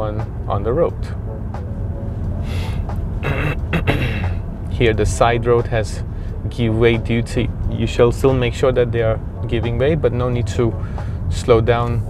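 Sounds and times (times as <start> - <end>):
car cabin engine and tyre rumble: 0.0 - 12.0
breathy sounds from driver: 2.4 - 4.4, 6.0 - 6.5, 10.8 - 11.3.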